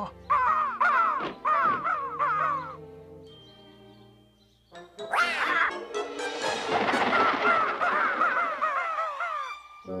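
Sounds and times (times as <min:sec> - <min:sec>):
cartoon crows cawing: 0:00.3 - 0:02.8, 0:05.1 - 0:05.8, 0:07.0 - 0:09.6.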